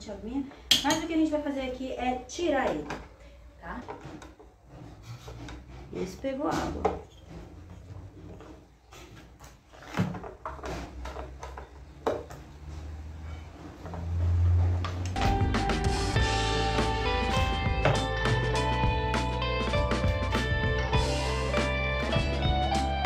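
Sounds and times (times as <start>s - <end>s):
guitar music: 15.1s - 23.0s.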